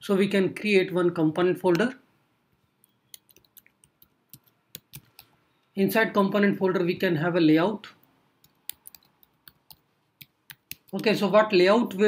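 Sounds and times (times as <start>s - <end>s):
computer keyboard key clicks: 3.1s - 5.3s, 8.4s - 11.0s.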